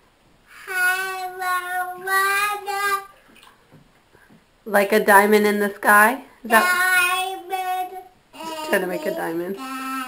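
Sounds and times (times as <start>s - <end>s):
toddler singing: 0.5s - 3.2s, 6.5s - 10.0s.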